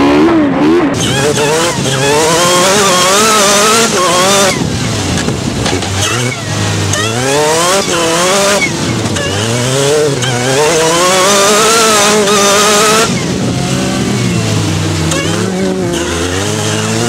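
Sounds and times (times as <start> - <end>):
race car engine at full throttle: 0.0 - 17.0.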